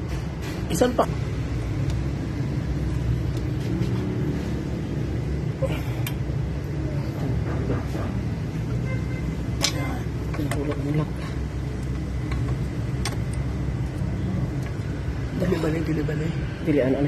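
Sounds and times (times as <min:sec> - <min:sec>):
workshop background rumble: 0:00.0 - 0:17.0.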